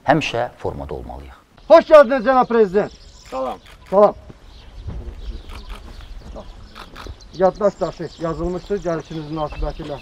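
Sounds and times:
wind rumbling on microphone: 3.6s - 10.0s.

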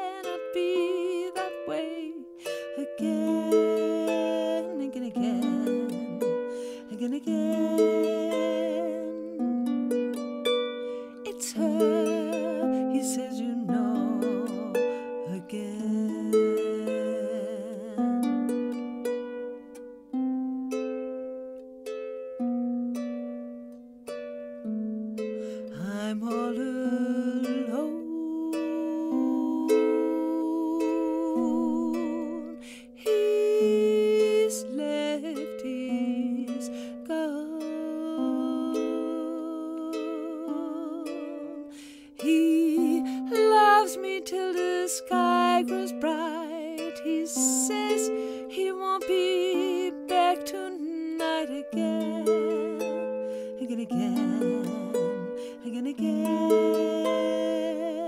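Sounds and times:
person singing with vibrato: 0.0s - 9.9s, 10.9s - 18.6s, 25.6s - 58.0s
plucked strings: 0.0s - 58.0s.

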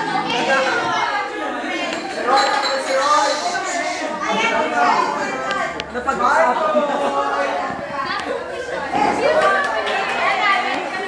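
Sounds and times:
overlapping chatter in echoing hall: 0.0s - 11.0s.

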